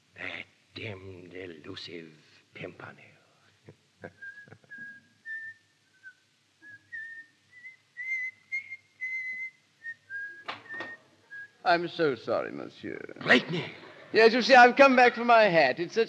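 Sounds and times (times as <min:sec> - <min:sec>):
man whistling a slow tune: 0:04.2 - 0:11.6.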